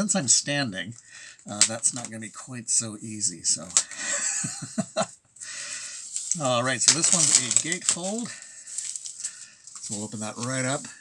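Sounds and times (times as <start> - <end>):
faint rustling hiss: 0.0 - 11.0
man chuckling: 3.8 - 5.2.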